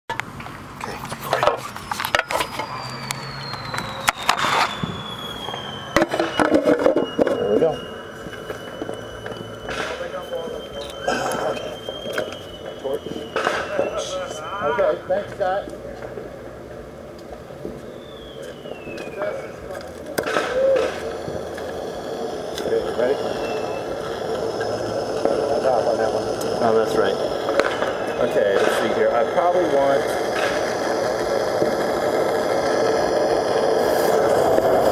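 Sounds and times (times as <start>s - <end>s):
high tone sinking in pitch: 1.9s - 15.2s, 17.8s - 34.9s
firework bang: 2.0s - 14.9s, 17.6s - 34.9s
people's voices: 7.0s - 34.9s.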